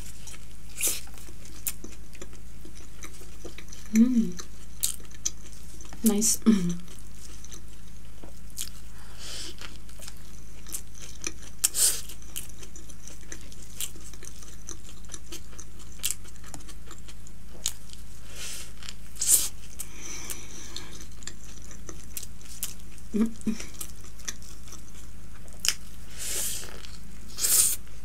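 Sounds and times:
chewing and crunching burger: 0.0 - 6.0, 6.7 - 27.9.

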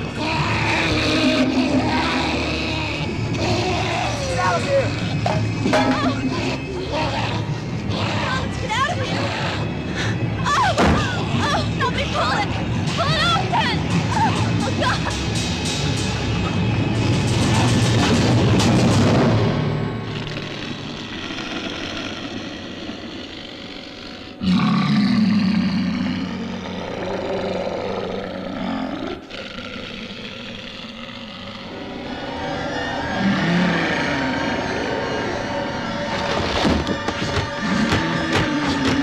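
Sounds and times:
dramatic film music: 0.0 - 39.0
film sound effects: 0.0 - 39.0.

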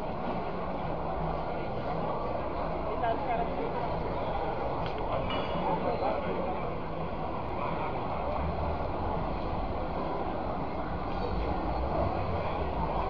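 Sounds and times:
distant crowd chatter: 0.0 - 13.0.

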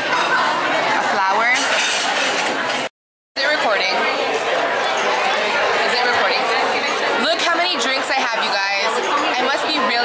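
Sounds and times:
diners talking hubbub: 0.0 - 10.0.

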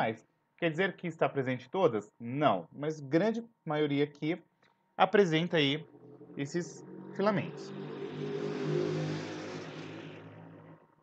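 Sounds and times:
vehicle passing by: 5.8 - 11.0.

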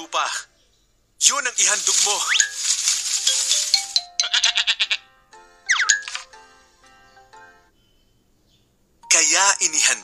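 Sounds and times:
soft background music: 1.7 - 10.0
ram bleating: 4.2 - 5.1.

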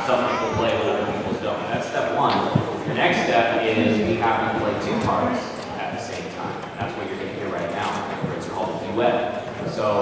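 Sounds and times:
indistinct voices murmuring: 0.0 - 10.0.

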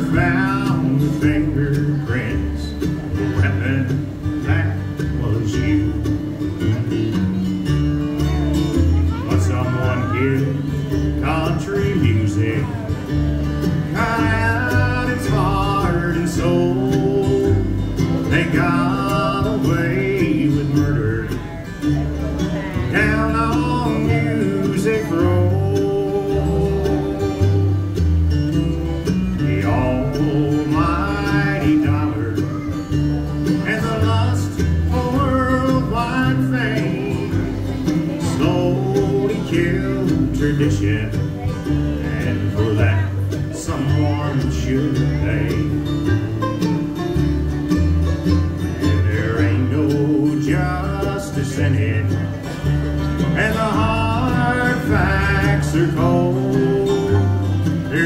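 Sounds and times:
person singing: 0.0 - 7.2, 8.9 - 13.1, 13.7 - 28.1, 29.0 - 46.8, 48.8 - 58.0
acoustic guitar: 0.0 - 58.0
banjo: 0.0 - 58.0
mandolin: 0.0 - 58.0
upright bass: 0.0 - 58.0.

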